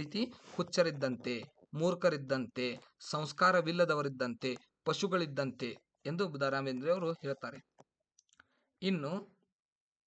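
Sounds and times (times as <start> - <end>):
man lecturing: 0.0 - 7.9, 8.5 - 9.7.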